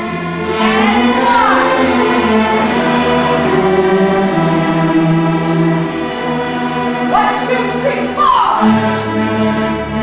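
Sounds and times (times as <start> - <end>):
string orchestra playing chords: 0.0 - 10.0.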